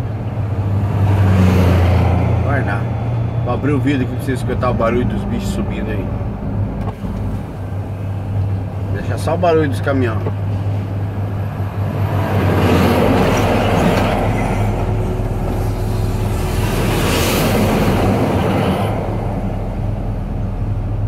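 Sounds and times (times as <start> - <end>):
heavy trucks passing: 0.0 - 21.0
steady low drone: 0.0 - 21.0.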